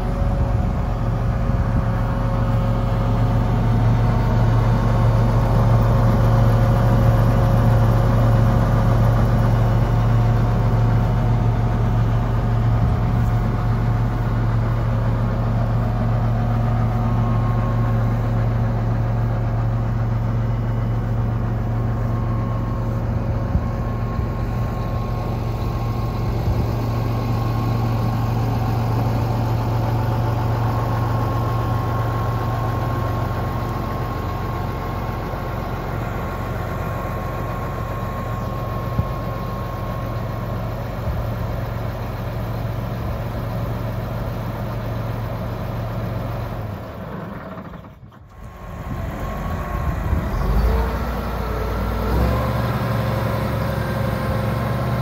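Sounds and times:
tractor diesel engine idling: 0:00.0 - 0:55.0.

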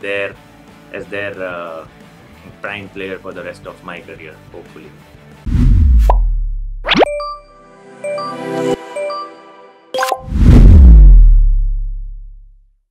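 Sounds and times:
deep boom: 0:05.5 - 0:06.8, 0:10.3 - 0:12.6
rising swoosh: 0:10.2 - 0:12.0.

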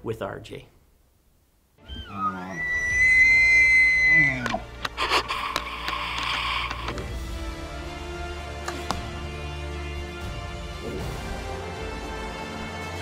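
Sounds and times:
elk bugling: 0:01.8 - 0:06.8
theme music: 0:01.8 - 0:13.0.

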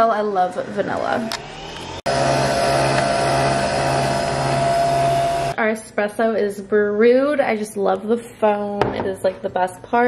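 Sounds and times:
coffee machine motor whirring: 0:00.4 - 0:05.6.

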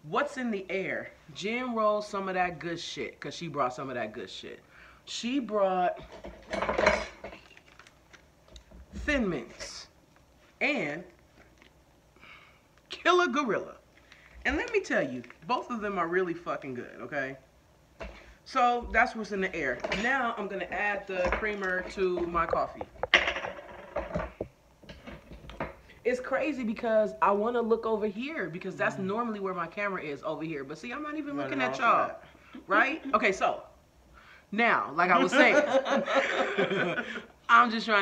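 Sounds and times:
plastic pouch clicks and rustles: 0:07.4 - 0:08.6
plastic bottle crackling: 0:07.4 - 0:08.7.

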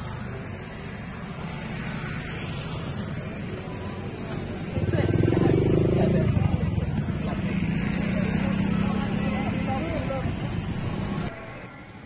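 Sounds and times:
motorcycle engine running: 0:01.5 - 0:11.2
people's voices: 0:02.9 - 0:12.0.

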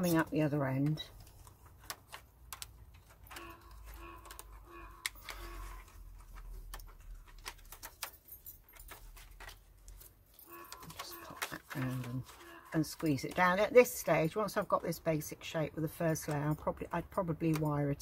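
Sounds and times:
wire netting clicking and rattling: 0:00.0 - 0:13.8.

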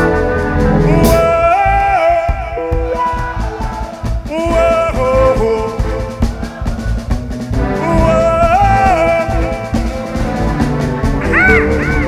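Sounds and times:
live reggae band playing: 0:00.0 - 0:12.0.

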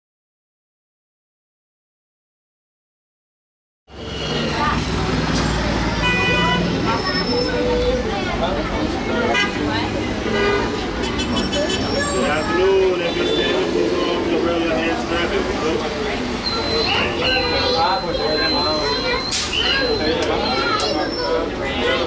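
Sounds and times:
car horns tooting: 0:03.9 - 0:04.8, 0:05.9 - 0:08.0, 0:09.2 - 0:15.2, 0:16.2 - 0:22.0
low traffic rumble: 0:03.9 - 0:22.0
people's voices: 0:03.9 - 0:22.0.

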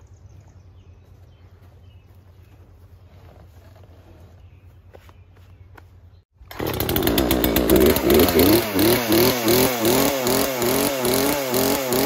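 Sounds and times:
chainsaw running and revving: 0:06.5 - 0:12.0.

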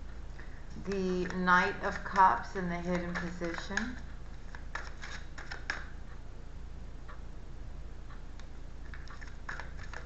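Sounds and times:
steady low hum: 0:00.0 - 0:10.0
cards being shuffled: 0:00.8 - 0:02.2, 0:02.9 - 0:05.9, 0:08.9 - 0:10.0.

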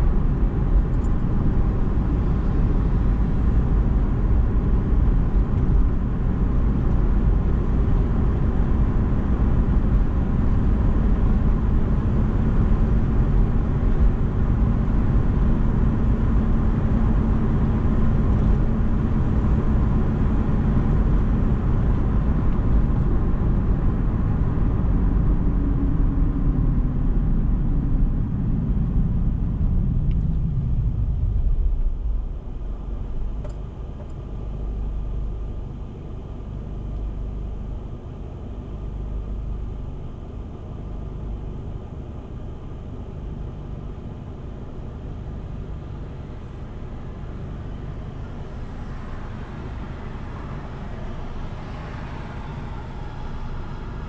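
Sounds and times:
car driving interior noise: 0:00.0 - 0:54.0
car engine idling: 0:28.7 - 0:54.0.

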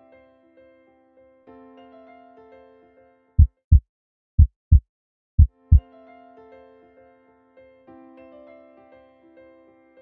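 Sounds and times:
heartbeat thumps: 0:03.4 - 0:03.8, 0:04.4 - 0:04.8
soft keyboard music: 0:05.4 - 0:10.0.

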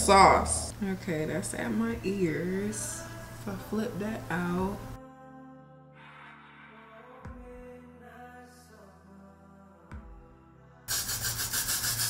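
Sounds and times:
soft background music: 0:00.0 - 0:12.0
loud rapid rubbing noise: 0:10.9 - 0:12.0.

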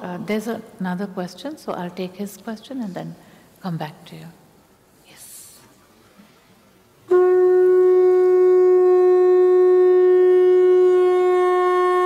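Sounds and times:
conch shell blown: 0:07.0 - 0:12.0.

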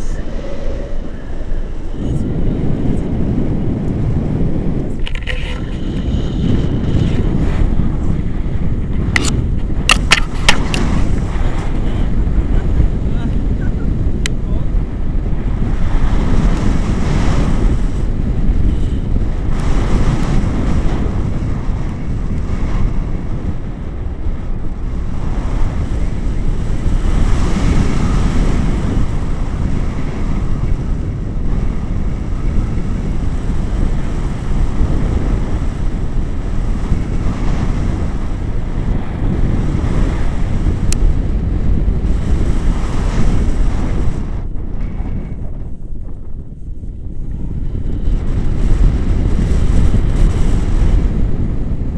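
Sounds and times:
wind buffeting microphone: 0:00.0 - 0:51.9.

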